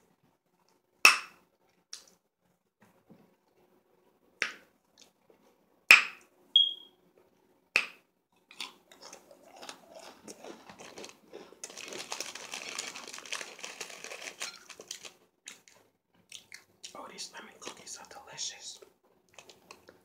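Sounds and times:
crunchy chewing of cookie: 0:08.4 - 0:18.2, 0:18.8 - 0:20.0.

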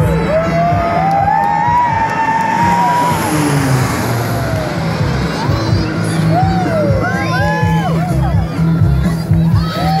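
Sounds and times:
airplane engine fly-by: 0:00.0 - 0:08.2
music: 0:00.0 - 0:10.0.

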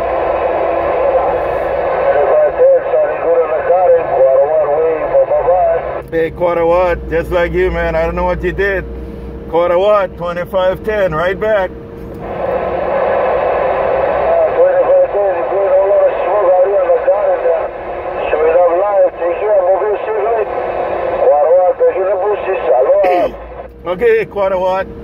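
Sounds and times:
radio static hiss: 0:00.0 - 0:06.0, 0:12.2 - 0:23.7
tinny radio speech: 0:00.9 - 0:08.8, 0:14.1 - 0:24.8
person laughing: 0:23.0 - 0:23.4.

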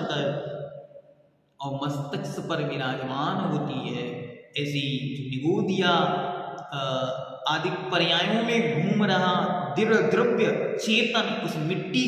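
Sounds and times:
man chanting: 0:00.0 - 0:00.4, 0:01.6 - 0:12.0.

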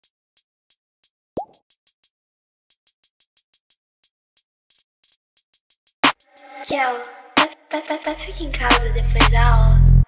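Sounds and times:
trap beat hi-hats ticking: 0:00.0 - 0:02.1, 0:02.7 - 0:10.0.

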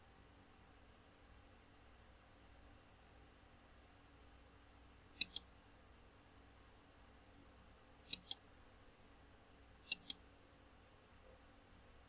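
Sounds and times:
faint low hum: 0:00.0 - 0:12.0
computer mouse clicks: 0:05.2 - 0:05.5, 0:08.1 - 0:08.4, 0:09.8 - 0:10.2.

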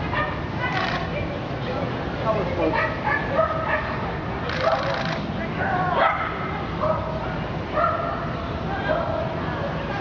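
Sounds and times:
dog barking high-pitched: 0:04.5 - 0:05.0.

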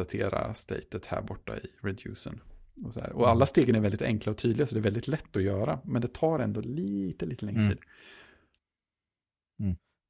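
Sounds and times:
person murmuring: 0:07.4 - 0:07.8, 0:09.6 - 0:09.9.

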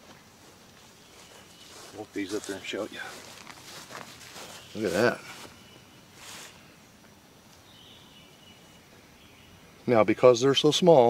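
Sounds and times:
soft rustle: 0:00.0 - 0:06.8
faint steady hiss: 0:00.0 - 0:11.0.

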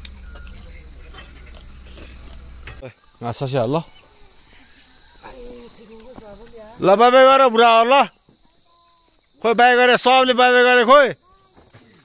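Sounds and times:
low rumble: 0:00.0 - 0:02.8
insects chirring: 0:00.0 - 0:12.0.

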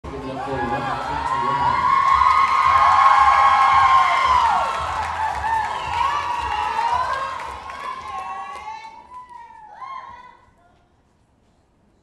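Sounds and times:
audience cheering and screaming: 0:00.1 - 0:10.1.

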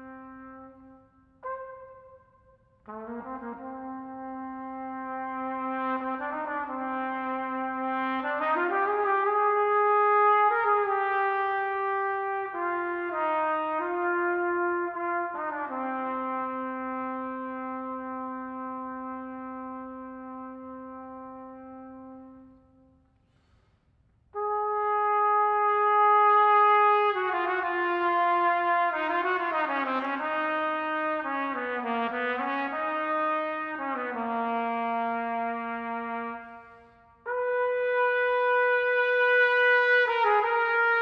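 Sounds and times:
trumpet long low note: 0:00.0 - 0:23.2, 0:24.3 - 0:41.0.

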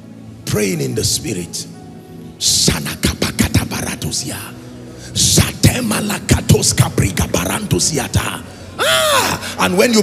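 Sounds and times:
man praying into a microphone: 0:02.4 - 0:08.5.

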